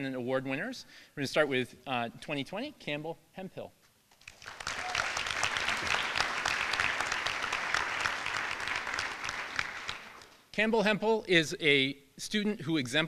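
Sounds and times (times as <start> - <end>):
audience applauding: 4.2 - 10.4.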